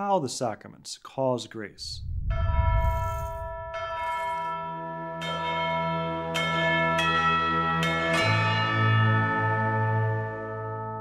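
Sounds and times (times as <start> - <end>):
low sustained drone: 2.0 - 3.9
bell-like chimes: 2.3 - 11.0.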